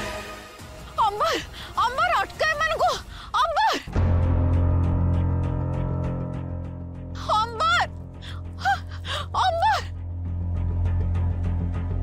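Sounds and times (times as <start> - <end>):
low dramatic music score: 0.0 - 12.0
woman gasping and crying out: 8.2 - 10.0.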